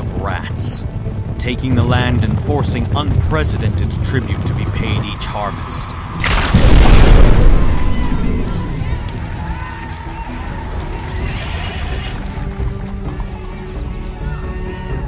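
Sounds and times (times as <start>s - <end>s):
background music: 0.0s - 15.0s
heavy boom: 6.2s - 9.0s
horse whinnying: 11.1s - 12.2s.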